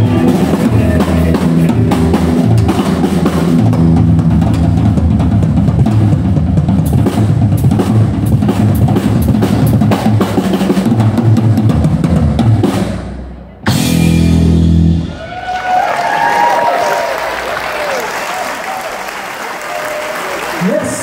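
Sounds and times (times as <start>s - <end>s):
drum kit solo: 0.0s - 15.4s.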